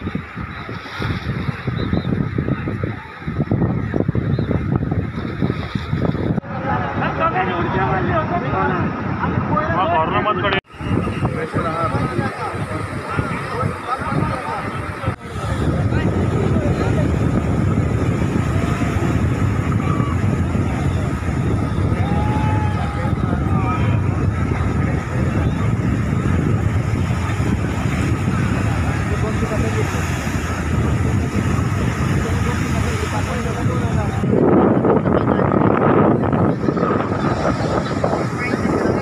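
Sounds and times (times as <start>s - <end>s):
surf rushing: 0.0s - 39.0s
wind on microphone: 0.0s - 39.0s.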